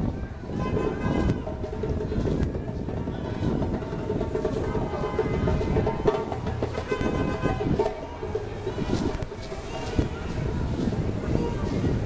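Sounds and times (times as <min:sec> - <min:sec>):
traffic rumble: 0:00.0 - 0:12.0.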